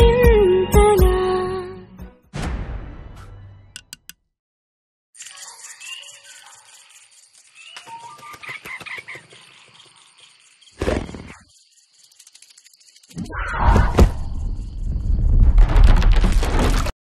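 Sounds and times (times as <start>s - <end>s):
light cartoon music: 0.0s - 4.2s.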